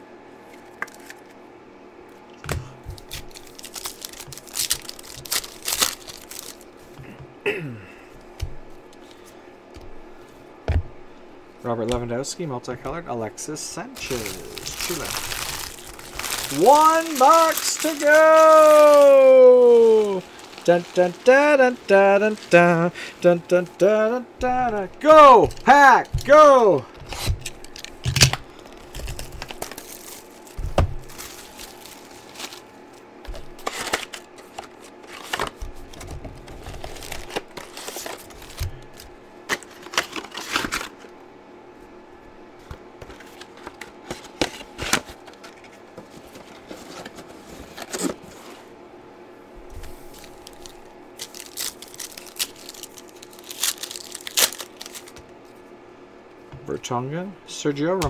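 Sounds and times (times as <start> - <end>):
foil wrappers crinkling and tearing: 3.0 - 6.8, 13.9 - 41.1, 49.8 - 55.2.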